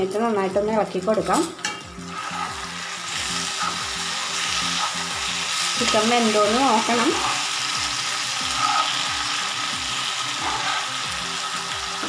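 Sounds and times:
chicken sizzling in hot oil: 0:01.9 - 0:12.0
spatula stirring in pan: 0:02.1 - 0:09.3, 0:10.1 - 0:11.3.

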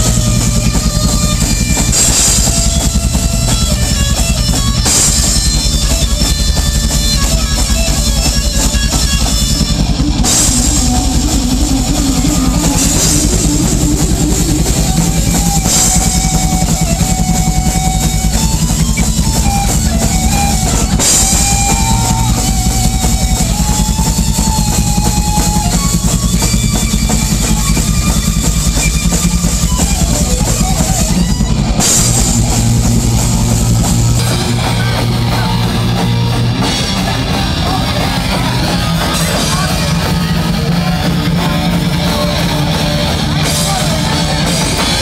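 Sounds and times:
distorted electric guitars: 0:00.0 - 0:45.0
fast drum kit: 0:00.0 - 0:45.0
thrash metal band playing: 0:00.0 - 0:45.0.

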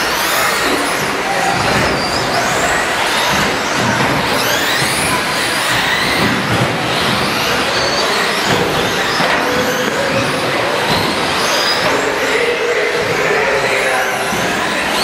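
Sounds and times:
rc truck motors whining: 0:00.0 - 0:15.0
tyre and drivetrain noise: 0:00.0 - 0:15.0.

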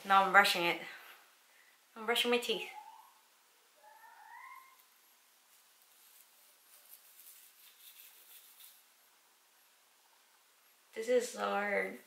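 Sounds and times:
faint rising cry: 0:03.8 - 0:04.9.

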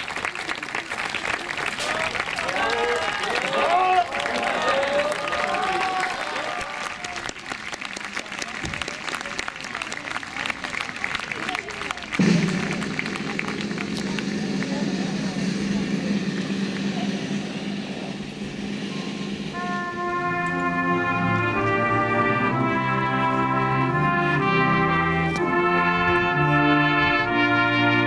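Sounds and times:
audience applause: 0:00.0 - 0:17.1.

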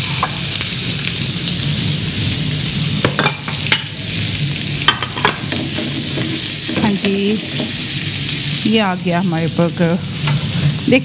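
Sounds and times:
onion rings sizzling in oil: 0:00.0 - 0:11.0.

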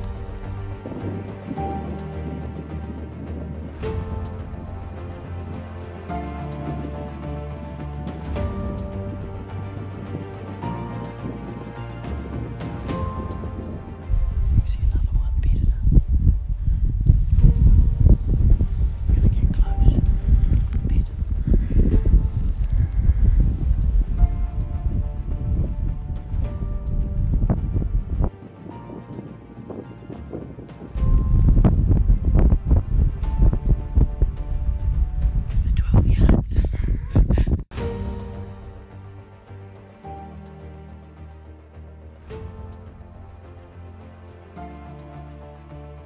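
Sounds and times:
wind buffeting microphone: 0:00.0 - 0:05.0, 0:08.4 - 0:37.7
background music: 0:00.0 - 0:46.0.

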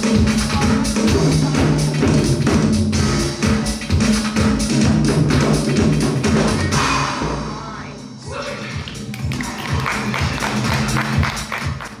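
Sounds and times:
live music with steady drum beat: 0:00.0 - 0:07.0, 0:08.8 - 0:12.0.

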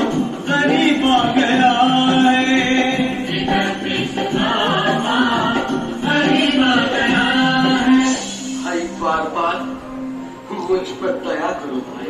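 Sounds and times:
people singing a song: 0:00.0 - 0:09.6.

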